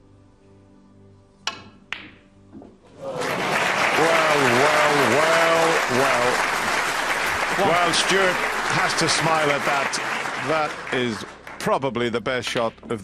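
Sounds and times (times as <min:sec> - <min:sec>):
audience applause: 0:03.0 - 0:11.8.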